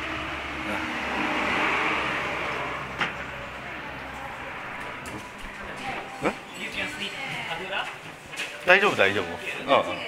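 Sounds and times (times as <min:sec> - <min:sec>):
road vehicle passing: 0:00.0 - 0:09.8.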